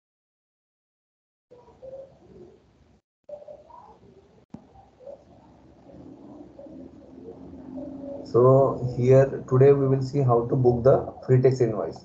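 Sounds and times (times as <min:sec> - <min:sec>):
faint pigeon cooing: 0:01.5 - 0:02.7, 0:03.3 - 0:12.0.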